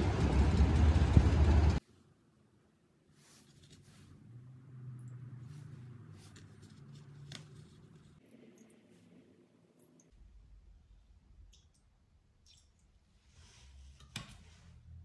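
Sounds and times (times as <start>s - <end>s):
low hum: 0.0s - 1.8s.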